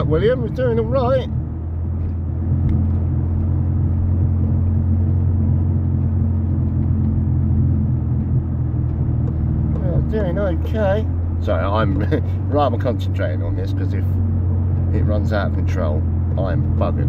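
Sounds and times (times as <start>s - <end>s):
car engine running at low revs: 0.0s - 17.0s.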